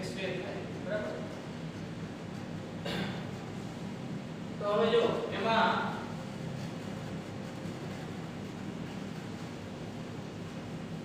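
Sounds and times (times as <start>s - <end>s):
low hum with light hiss: 0.0s - 11.0s.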